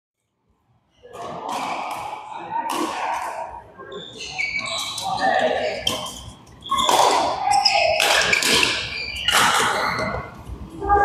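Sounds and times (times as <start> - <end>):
shoe squeaks: 3.9 - 10.4
racket hitting shuttlecock: 6.8 - 10.0.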